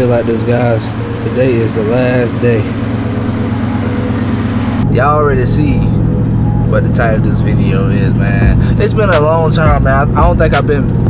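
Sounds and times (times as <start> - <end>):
cab drone while driving: 0.0 - 11.0
truck engine idling: 0.0 - 11.0.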